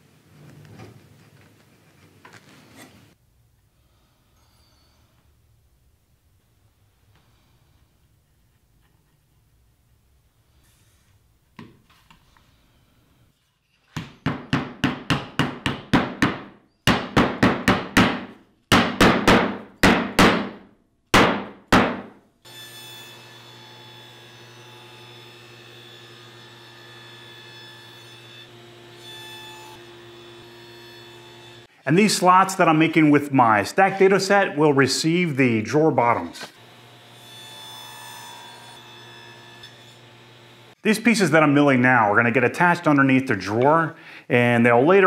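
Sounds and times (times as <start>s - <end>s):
hammer strikes on wood: 14.0s - 22.2s.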